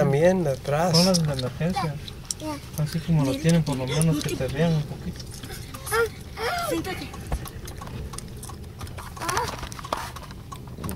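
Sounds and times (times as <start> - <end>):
vehicle engine and road noise: 0.0 - 10.9.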